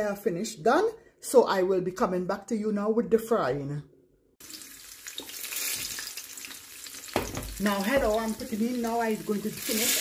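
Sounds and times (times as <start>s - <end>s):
hot oil sizzling in a frying pan: 4.4s - 10.0s.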